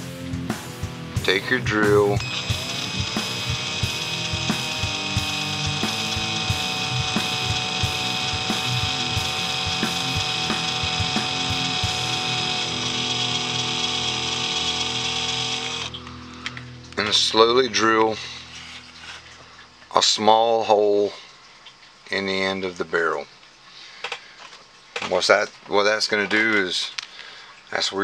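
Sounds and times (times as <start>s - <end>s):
cordless drill whining: 2.0s - 16.0s.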